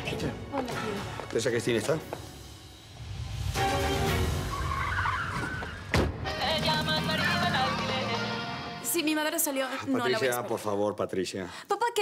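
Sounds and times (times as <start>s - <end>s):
music: 0.0s - 9.2s.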